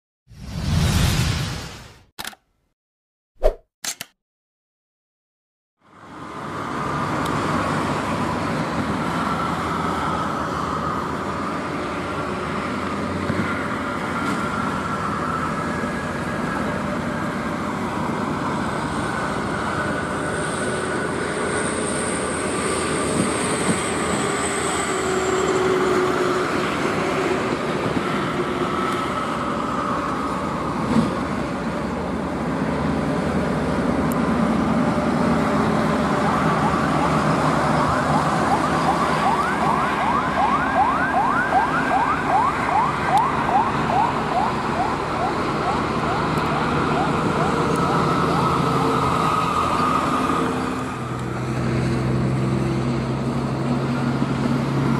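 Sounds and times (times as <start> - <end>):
trucks and traffic passing: 5.8 - 54.9
siren wailing: 35.9 - 50.6
siren yelp: 36.0 - 50.4.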